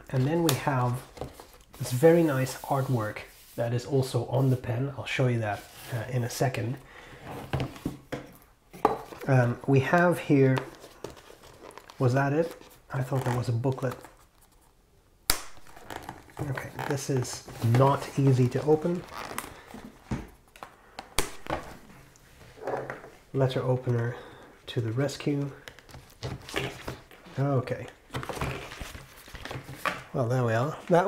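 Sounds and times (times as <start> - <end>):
card rustling: 9.0 - 14.8, 24.9 - 30.2.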